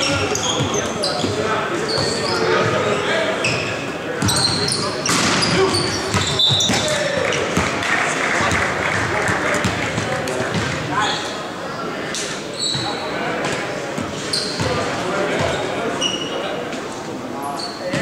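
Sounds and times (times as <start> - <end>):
sneakers squeaking on hardwood: 0.0 - 7.6, 12.6 - 14.8
crowd noise: 0.0 - 18.0
players shouting: 4.4 - 10.3
volleyball struck sharply: 5.0 - 6.9.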